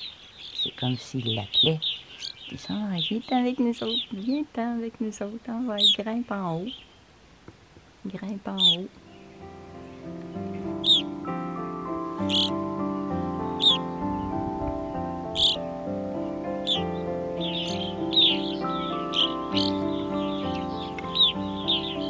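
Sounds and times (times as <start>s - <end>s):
sharp bird calls: 0.0s - 4.5s, 5.7s - 7.2s, 8.1s - 22.0s
soft instrumental music: 8.2s - 22.0s.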